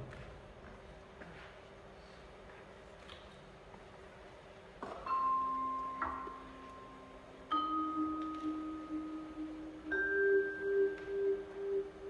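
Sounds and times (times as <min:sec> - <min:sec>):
vibraphone notes with tremolo: 0:05.1 - 0:12.0.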